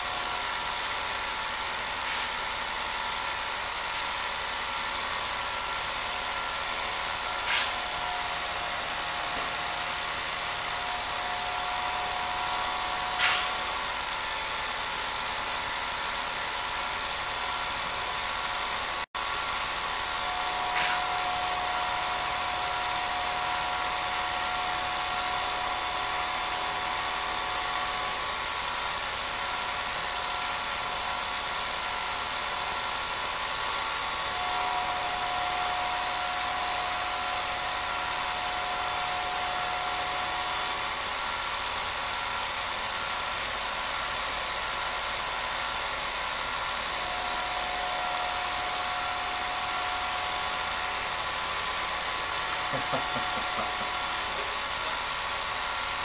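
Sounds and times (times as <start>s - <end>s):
film projector running: 0.0s - 56.0s.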